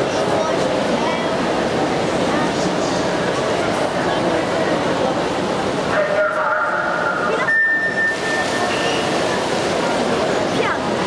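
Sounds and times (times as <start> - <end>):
crowd chatter in pool hall: 0.0 - 11.0.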